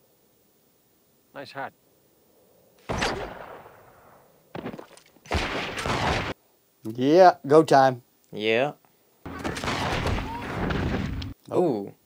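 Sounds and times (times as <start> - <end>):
quick sharp cracks: 2.8 - 3.9, 4.6 - 6.4
gunshot with echoing tail: 2.9 - 4.2, 5.3 - 6.4.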